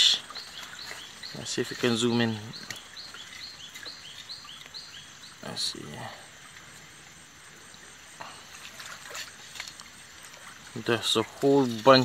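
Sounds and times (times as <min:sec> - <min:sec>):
creek trickling: 0:00.0 - 0:12.0.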